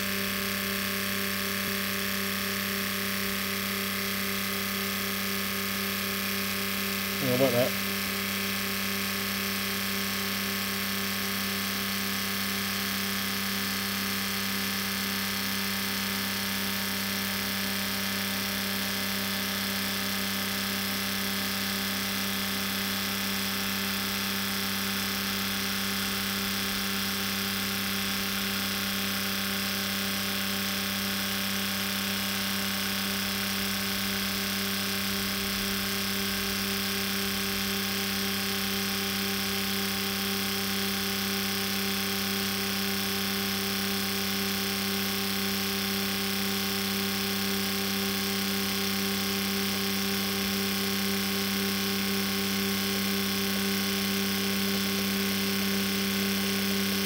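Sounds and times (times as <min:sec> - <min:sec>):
buzzing hum of injectors and pump: 0:00.0 - 0:57.0.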